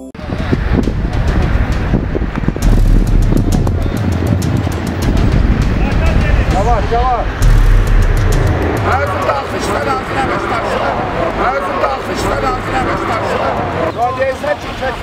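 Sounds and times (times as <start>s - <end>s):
people's voices: 0.0s - 15.0s
heavy low rumble: 0.2s - 14.0s.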